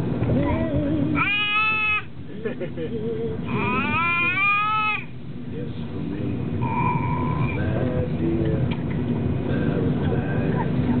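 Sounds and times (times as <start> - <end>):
toddler squealing: 1.2 - 2.1, 3.5 - 5.1.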